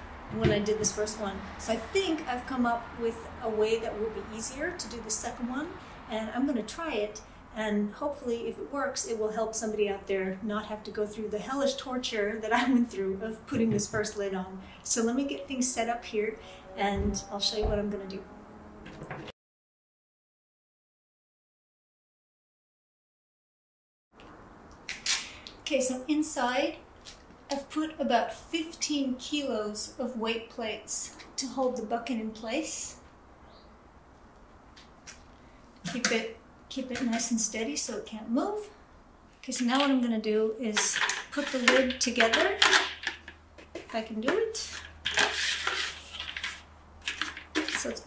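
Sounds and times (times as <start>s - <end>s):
plastic bucket lid scraping and clicking: 40.8s - 44.0s, 44.7s - 48.0s.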